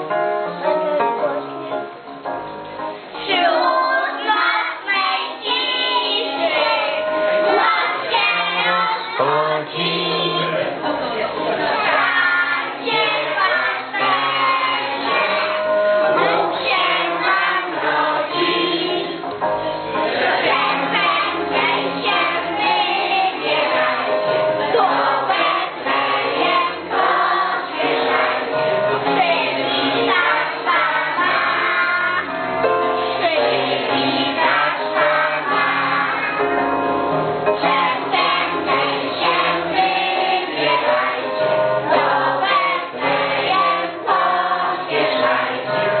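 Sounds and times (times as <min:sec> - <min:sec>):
instrumental accompaniment: 0:00.0 - 0:46.0
children singing a carol: 0:03.2 - 0:10.7, 0:11.5 - 0:32.4, 0:33.0 - 0:36.6, 0:37.6 - 0:46.0.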